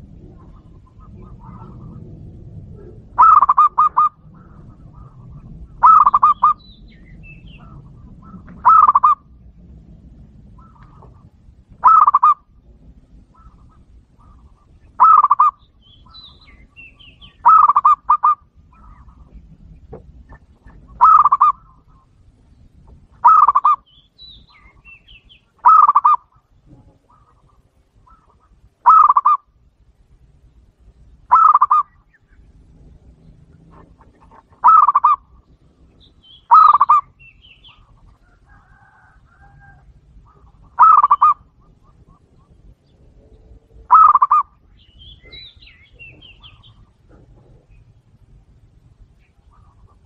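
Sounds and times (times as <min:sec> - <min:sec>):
dove cooing: 0:00.0 - 0:09.6, 0:10.2 - 0:22.3, 0:22.9 - 0:23.9, 0:24.5 - 0:29.6, 0:31.3 - 0:48.4.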